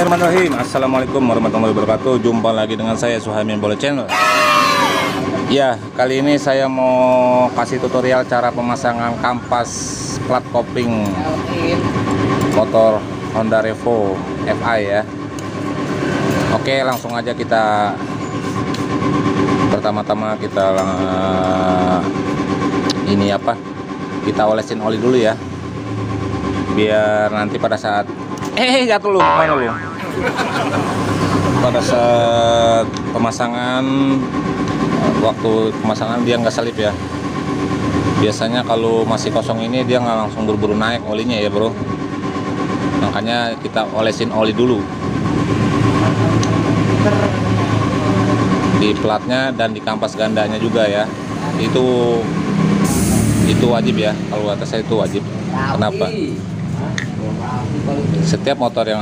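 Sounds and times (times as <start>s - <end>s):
low mechanical drone: 25.0s - 43.2s, 44.2s - 59.0s
faint constant tone: 29.1s - 30.8s
even-pitched drone: 29.2s - 31.8s.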